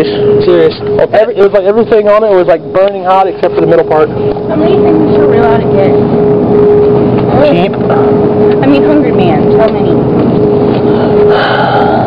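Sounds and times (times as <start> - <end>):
steady hum: 0.0 - 12.0.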